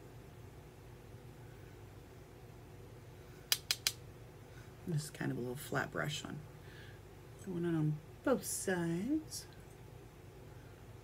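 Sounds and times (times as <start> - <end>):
faint steady low hum: 0.0 - 11.0
sharp taps of makeup tools: 3.5 - 4.0.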